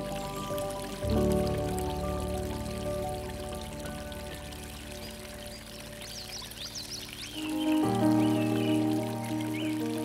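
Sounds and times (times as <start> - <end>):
running water: 0.0 - 10.0
soft background music: 0.0 - 10.0.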